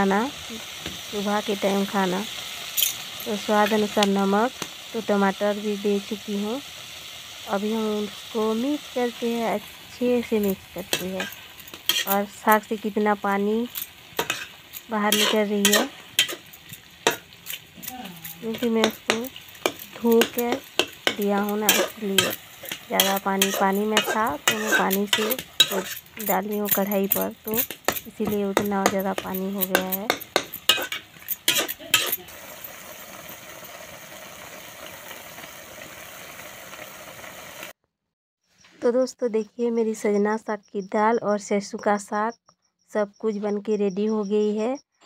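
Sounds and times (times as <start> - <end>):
faint hiss of steaming greens: 0.0 - 26.4, 28.9 - 37.8
spatula stirring greens: 9.1 - 32.8
spatula knocking against pan: 27.8 - 30.9.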